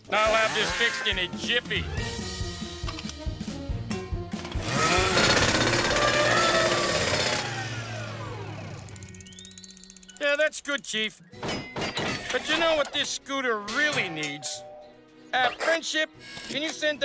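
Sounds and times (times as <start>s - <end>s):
background music: 0.0s - 17.0s
cartoon power screwdriver whirring: 4.4s - 10.2s.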